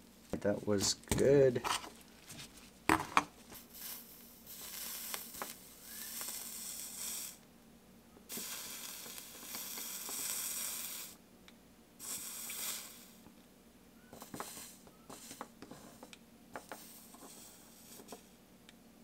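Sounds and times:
solder sizzling under soldering iron: 3.4 - 7.5, 8.3 - 11.2, 12.0 - 13.3, 14.0 - 18.4.

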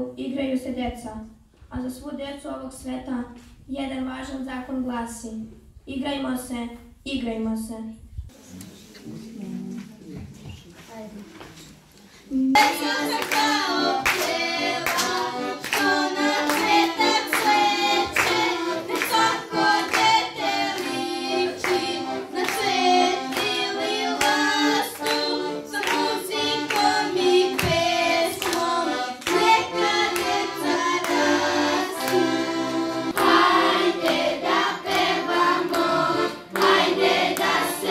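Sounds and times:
accordion: 12.5 - 37.9
children singing: 12.6 - 37.9
hands clapping: 12.6 - 37.9.

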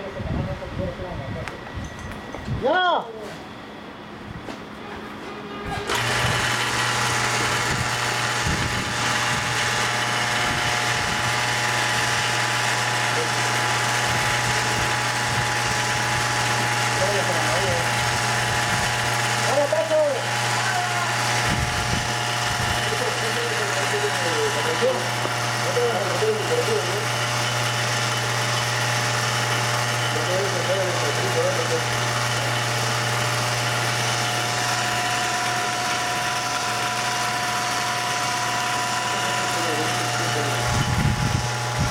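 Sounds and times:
machinery hum: 0.0 - 41.9
high whining tones: 32.2 - 41.9.

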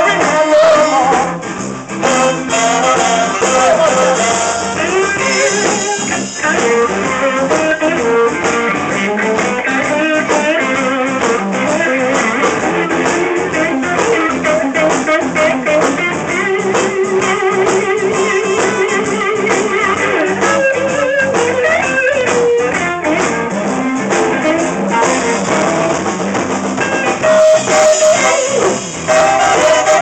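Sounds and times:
electric blues band: 0.0 - 30.0
electric guitar lead lines: 0.0 - 30.0.

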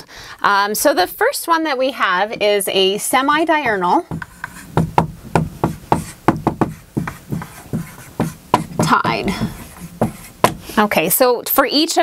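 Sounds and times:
marker writing on whiteboard: 4.1 - 10.8.

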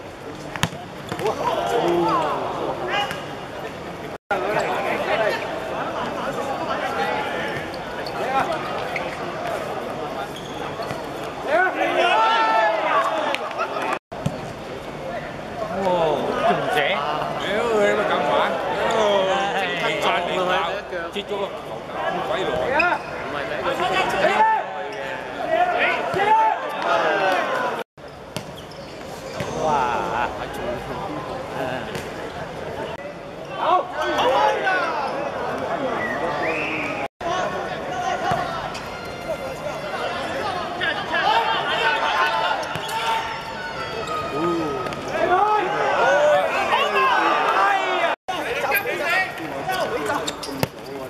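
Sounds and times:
players shouting: 11.4 - 14.0, 23.5 - 27.8, 33.5 - 50.3.

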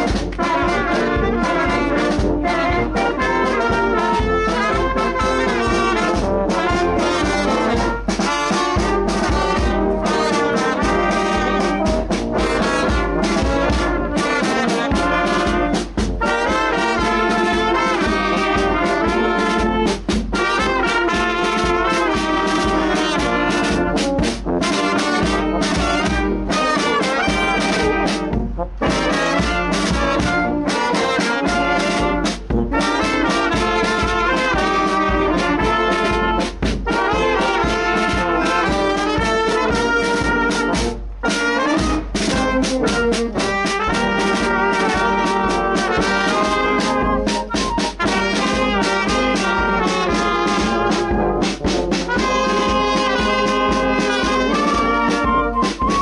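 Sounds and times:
bass drum: 0.0 - 56.0
brass band playing: 0.0 - 56.0.

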